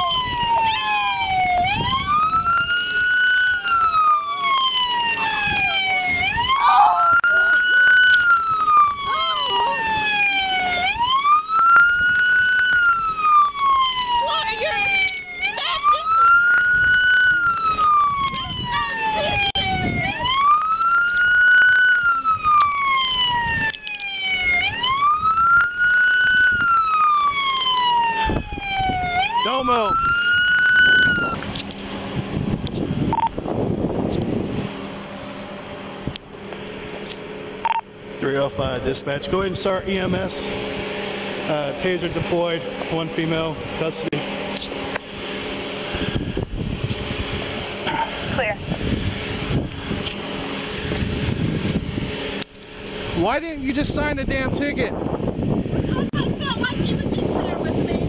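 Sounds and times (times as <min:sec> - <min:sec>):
police siren wailing: 0:00.0 - 0:58.0.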